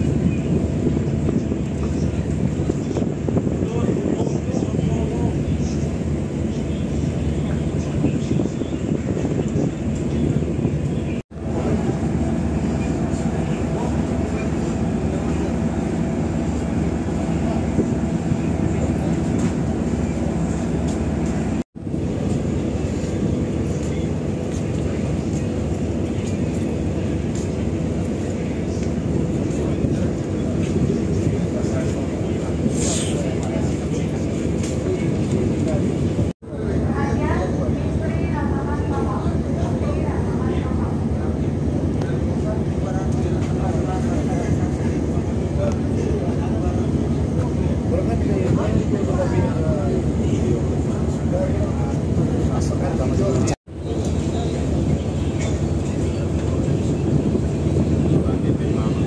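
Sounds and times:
wind on microphone: 0:00.0 - 0:36.3, 0:38.8 - 0:59.0
ship engines rumbling: 0:00.0 - 0:59.0.

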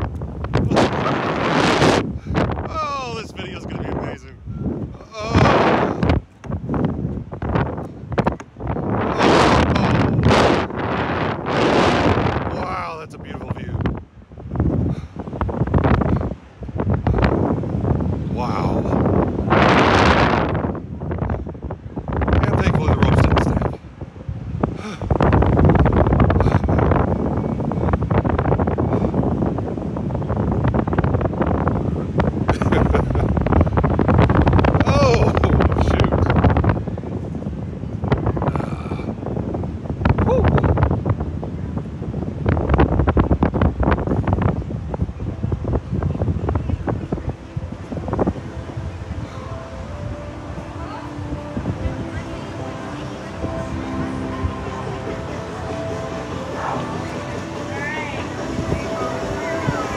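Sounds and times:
air rushing over microphone: 0:00.0 - 0:49.6.

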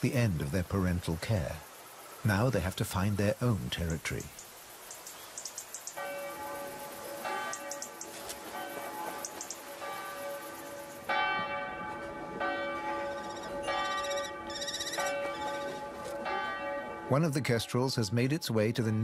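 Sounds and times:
church bells ringing: 0:06.0 - 0:07.8, 0:11.1 - 0:17.3.

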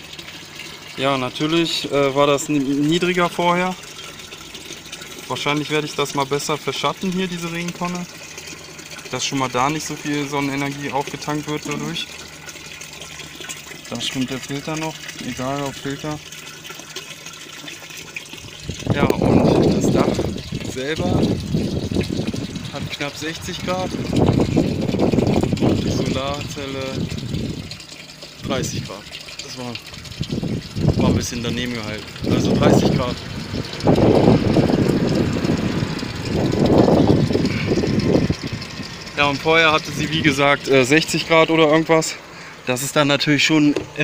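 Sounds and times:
water splashing into plastic bucket: 0:00.0 - 0:42.6.

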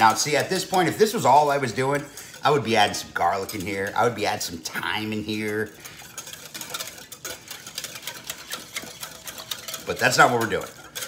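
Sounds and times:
whisk clicking against glass bowl: 0:00.0 - 0:11.0.

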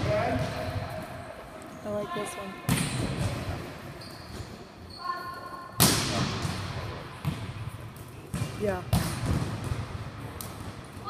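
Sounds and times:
volleyball smack: 0:05.8 - 0:07.5.

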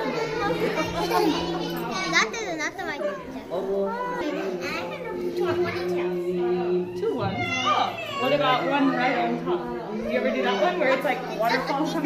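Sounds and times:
women and children chattering: 0:00.0 - 0:12.0.

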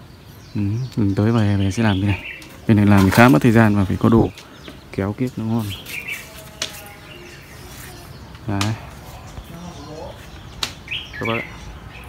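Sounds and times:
bird chirping: 0:00.0 - 0:12.0
garden background sound: 0:00.0 - 0:12.0.

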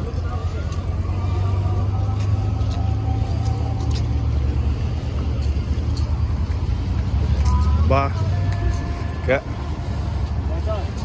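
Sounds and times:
cars passing close by: 0:00.0 - 0:11.0.

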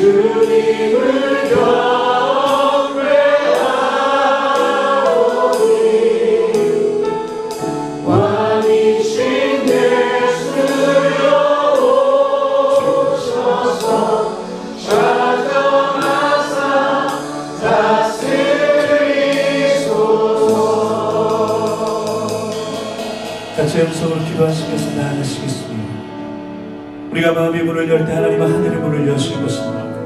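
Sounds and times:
voices singing together: 0:00.0 - 0:07.3, 0:08.0 - 0:23.8
worship band playing live: 0:00.0 - 0:30.0
cymbal strikes: 0:20.4 - 0:27.1.

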